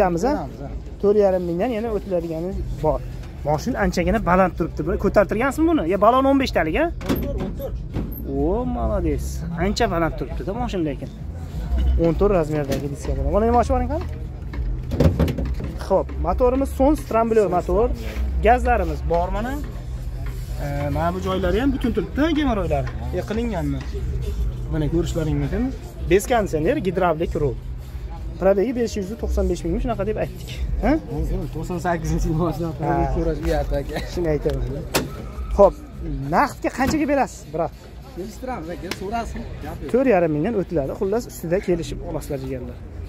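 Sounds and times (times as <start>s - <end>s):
men talking: 0.0s - 43.0s
car bonnet opening clatter: 14.5s - 15.8s, 34.8s - 35.4s.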